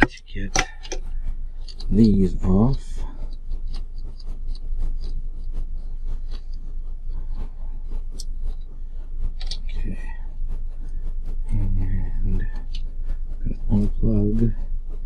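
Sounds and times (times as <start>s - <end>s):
small clicks taps and scrapes: 0.0s - 1.9s, 9.3s - 9.8s
steady low hum: 0.0s - 15.0s.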